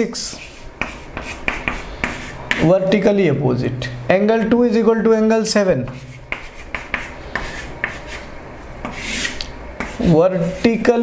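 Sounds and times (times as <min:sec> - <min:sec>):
chalk rasping on chalkboard: 0:00.1 - 0:02.7, 0:05.8 - 0:11.0
chalk tapping and scratching: 0:00.1 - 0:02.7, 0:05.8 - 0:11.0.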